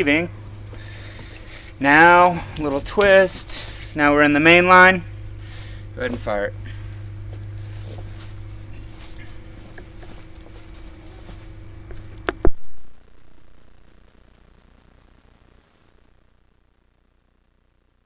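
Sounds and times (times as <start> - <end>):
low machine hum: 0.0 - 18.0.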